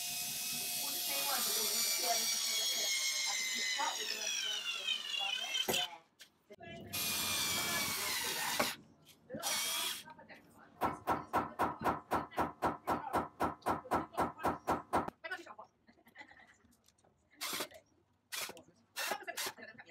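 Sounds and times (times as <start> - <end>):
cordless drill driving screws: 0.0 - 5.9, 7.0 - 8.8, 9.4 - 10.0, 17.4 - 19.5.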